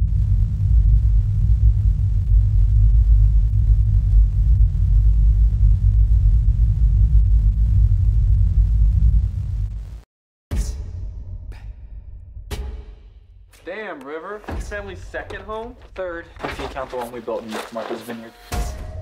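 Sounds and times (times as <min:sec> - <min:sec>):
deep steady rumble: 0:00.0 - 0:10.0.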